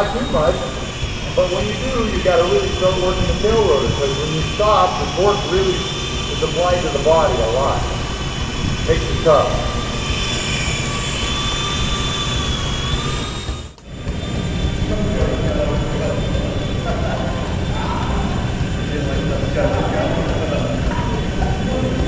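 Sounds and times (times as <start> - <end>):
voices murmuring: 0.0 - 11.0, 14.0 - 22.0
low rumble: 0.0 - 22.0
rc helicopter motor whine: 0.0 - 22.0.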